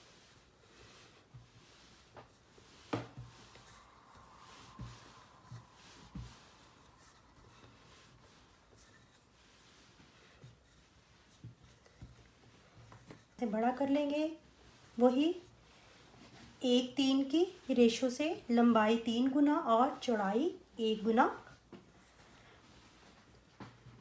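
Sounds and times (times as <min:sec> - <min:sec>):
rolling pin rolling dough: 0:00.0 - 0:24.0.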